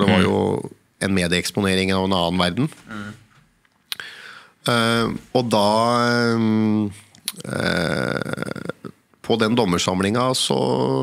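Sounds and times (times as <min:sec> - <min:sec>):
mouth clicks: 0:03.9 - 0:04.1
man's creaky hesitant vocal: 0:07.2 - 0:09.0.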